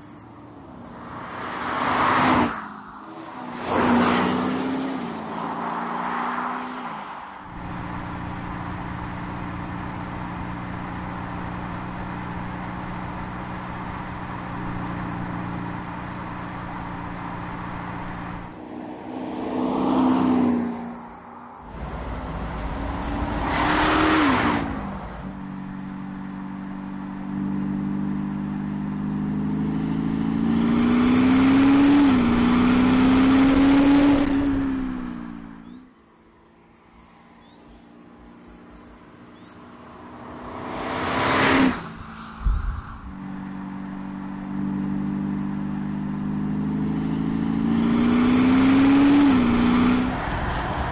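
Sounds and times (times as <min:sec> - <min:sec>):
car engine accelerating: 0:00.0 - 0:50.9.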